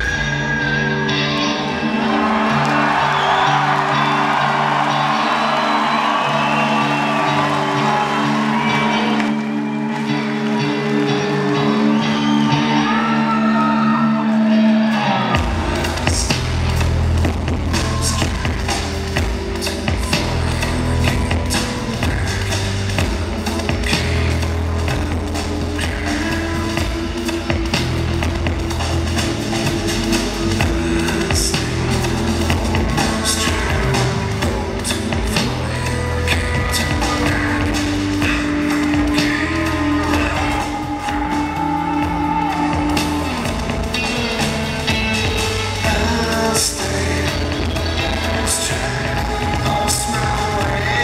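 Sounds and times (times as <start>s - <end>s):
drums: 0.0s - 51.0s
live rock band: 0.0s - 51.0s.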